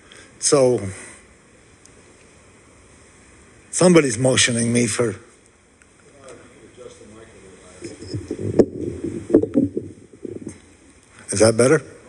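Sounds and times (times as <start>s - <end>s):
microphone handling thumps: 7.8s - 10.7s.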